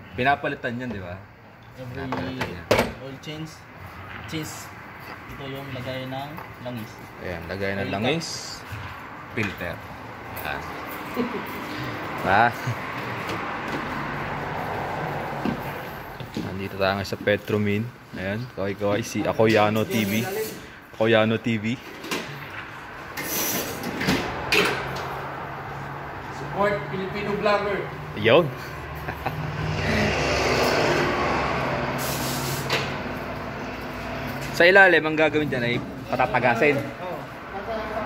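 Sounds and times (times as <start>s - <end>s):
air hissing: 23.2s - 24.0s, 31.8s - 33.0s.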